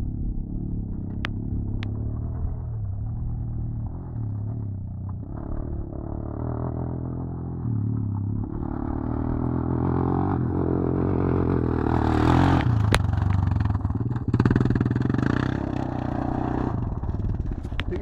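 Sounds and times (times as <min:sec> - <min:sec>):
quad bike engine revving: 0:05.2 - 0:18.0.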